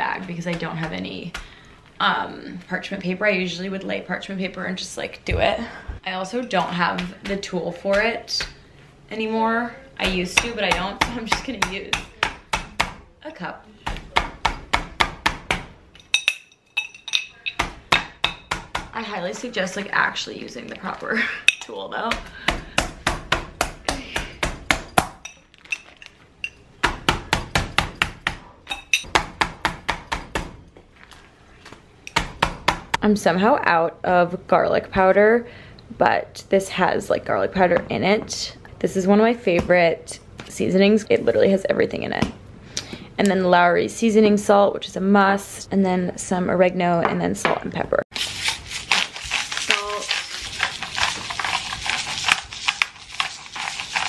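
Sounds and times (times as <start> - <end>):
glass pounding meat on countertop: 17.5 - 18.9.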